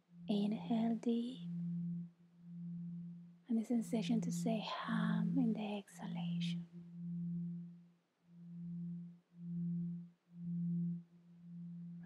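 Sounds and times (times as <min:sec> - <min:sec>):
low beating drone tone: 0:00.0 - 0:12.0.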